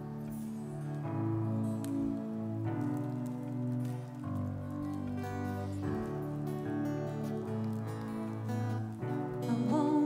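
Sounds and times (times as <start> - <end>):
acoustic guitars: 0.0 - 10.0
keyboard chords: 0.0 - 10.0.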